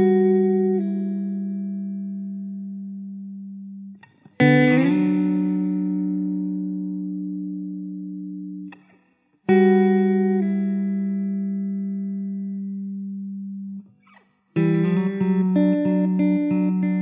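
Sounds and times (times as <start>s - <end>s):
plucked guitar notes: 0.0s - 8.9s, 9.5s - 17.0s.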